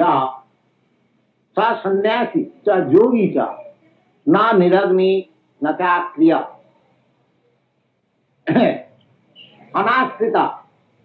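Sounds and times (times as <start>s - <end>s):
man coughing: 8.5s - 8.9s.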